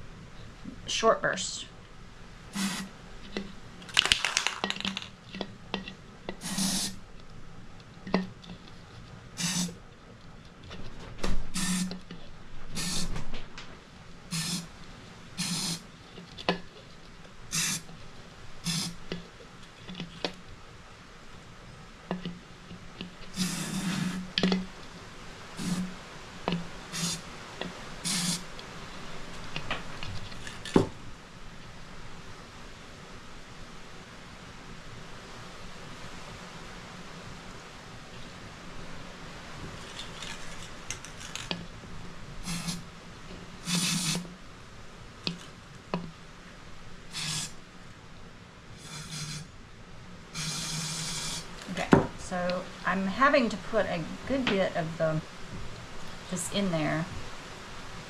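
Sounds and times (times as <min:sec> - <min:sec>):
spray paint can hissing: 0:02.5 - 0:02.9, 0:06.4 - 0:07.0, 0:09.4 - 0:09.8, 0:11.6 - 0:11.9, 0:12.8 - 0:13.1, 0:14.3 - 0:14.7, 0:15.4 - 0:15.8, 0:17.5 - 0:17.8, 0:18.6 - 0:19.0, 0:23.4 - 0:24.2, 0:25.6 - 0:26.0, 0:26.9 - 0:27.2, 0:28.0 - 0:28.5, 0:42.4 - 0:42.8, 0:43.6 - 0:44.3, 0:47.1 - 0:47.6, 0:48.8 - 0:49.5, 0:50.4 - 0:51.5.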